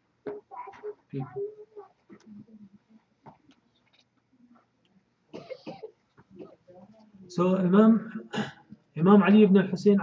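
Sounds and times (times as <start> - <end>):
man coughing: 5.4 - 5.9, 8.3 - 8.6
faint throat sounds: 8.1 - 8.7.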